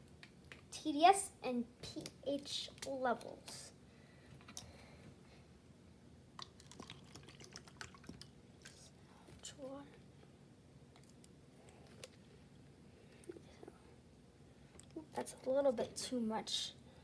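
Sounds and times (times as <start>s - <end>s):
water poured into plastic cup: 6.4s - 8.9s.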